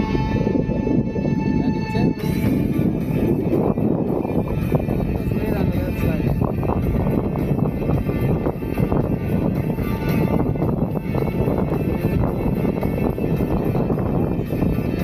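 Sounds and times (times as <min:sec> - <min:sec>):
music playing: 0:00.0 - 0:15.0
wind buffeting microphone: 0:00.0 - 0:15.0.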